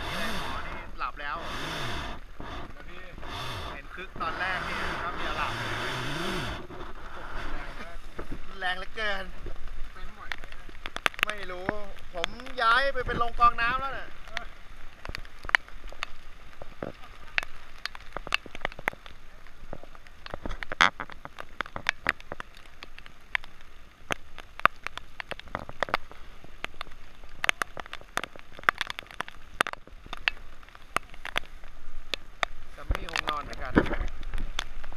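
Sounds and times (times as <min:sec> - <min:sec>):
raindrops tapping on camera: 0:00.0 - 0:34.9
steady rain: 0:00.0 - 0:34.9.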